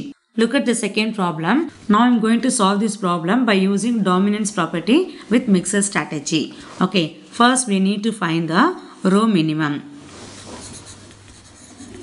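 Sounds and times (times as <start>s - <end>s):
pencil writing on paper: 10.3s - 12.0s.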